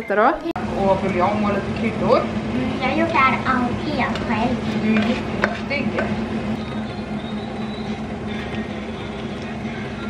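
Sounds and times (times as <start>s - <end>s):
extractor fan humming: 0.0s - 10.0s
faint cooking noise: 0.0s - 10.0s.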